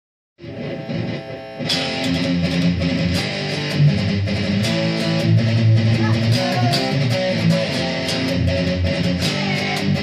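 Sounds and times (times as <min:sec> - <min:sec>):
electric guitar playing: 0:00.4 - 0:10.0.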